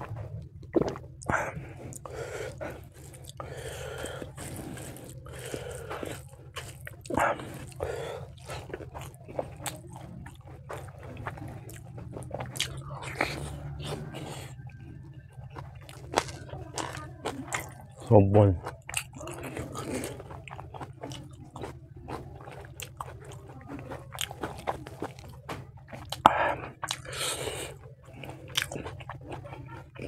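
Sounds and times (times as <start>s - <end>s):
close chewing: 0.0s - 30.0s
wet mouth clicks and smacks: 24.4s - 27.2s.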